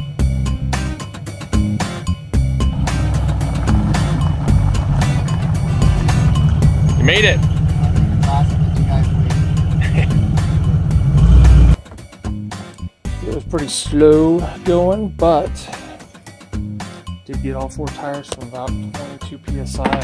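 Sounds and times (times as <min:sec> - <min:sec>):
engine rumbling: 0:00.0 - 0:12.4.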